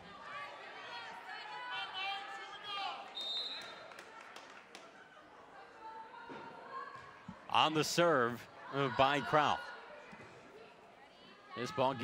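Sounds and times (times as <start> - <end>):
crowd and players' voices: 0.0 - 12.0.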